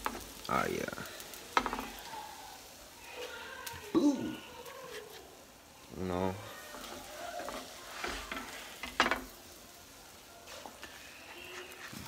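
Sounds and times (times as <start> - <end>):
patty sizzling in frying pan: 0.0 - 12.0.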